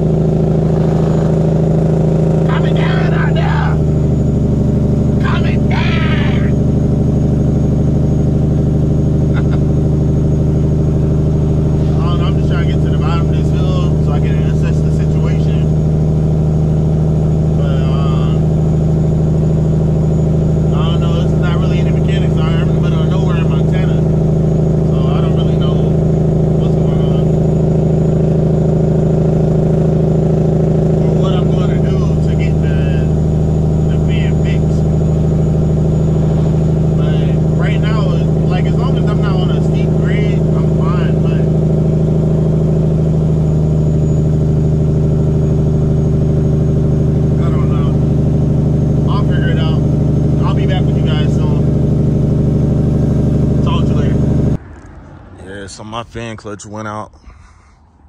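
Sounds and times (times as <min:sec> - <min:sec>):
truck diesel engine running: 0:00.0 - 0:57.1.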